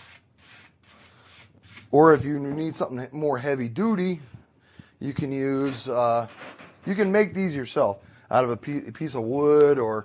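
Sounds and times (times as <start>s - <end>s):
sanding block rubbing on wood: 0.0s - 2.0s.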